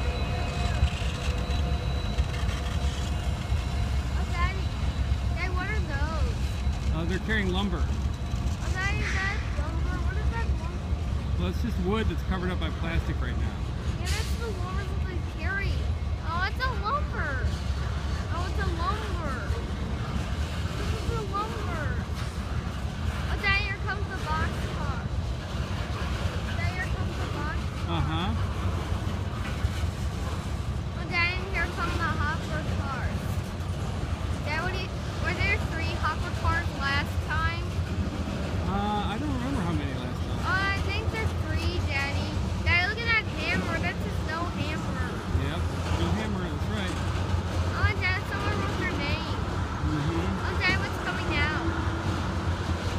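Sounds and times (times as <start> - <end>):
freight train wheels rumbling: 0.0 - 52.9.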